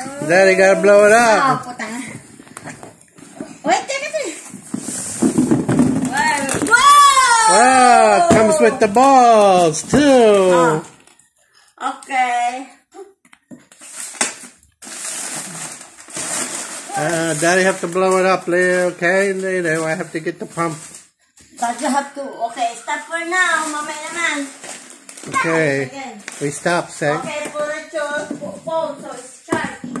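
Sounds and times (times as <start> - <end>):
plastic rustling and crinkling: 0.0 - 11.2, 13.5 - 30.0.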